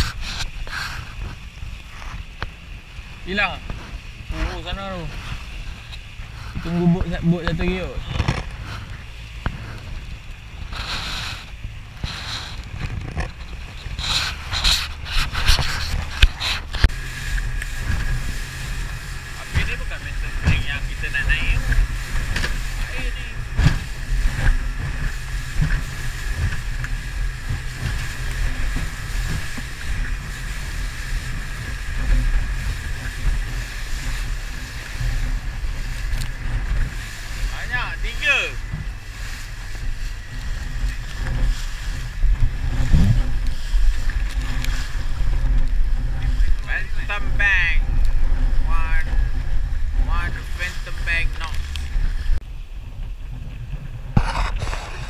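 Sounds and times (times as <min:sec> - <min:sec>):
boat motor whine: 0:00.0 - 0:55.0
hull slapping waves: 0:00.0 - 0:55.0
wind rumble on microphone: 0:00.0 - 0:55.0.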